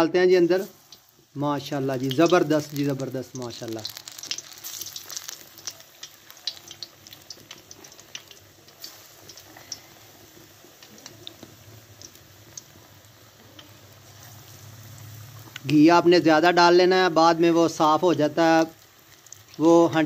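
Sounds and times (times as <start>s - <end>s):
eggplant deep-frying in oil: 0.0s - 20.0s
sharp crackles of frying: 0.0s - 20.0s.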